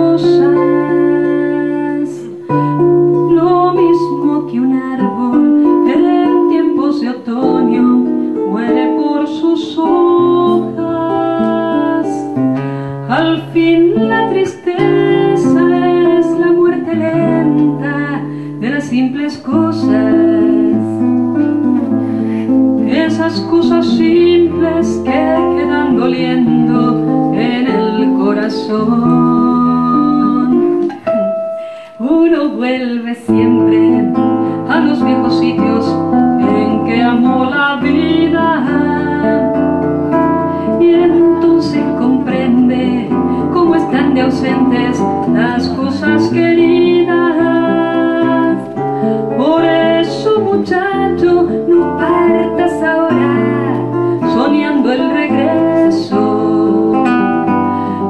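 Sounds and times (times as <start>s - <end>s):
classical guitar: 0.0s - 58.0s
woman singing a slow ballad: 0.0s - 58.0s.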